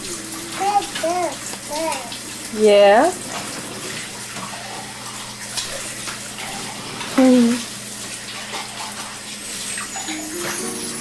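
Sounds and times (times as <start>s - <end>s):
rushing water noise: 0.0s - 11.0s.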